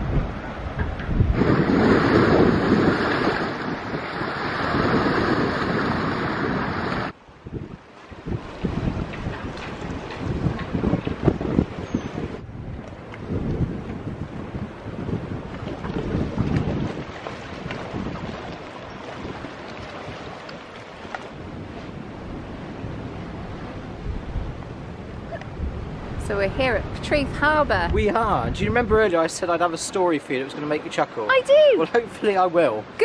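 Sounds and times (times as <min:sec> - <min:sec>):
wind buffeting microphone: 0:00.0 - 0:29.7
sea water washing: 0:00.0 - 0:33.0.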